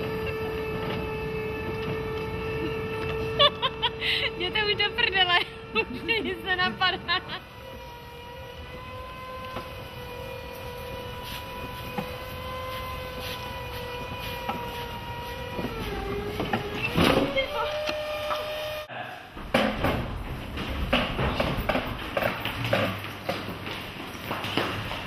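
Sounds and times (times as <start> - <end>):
electric motor whine: 0.0 - 18.9
knocks: 19.4 - 23.6.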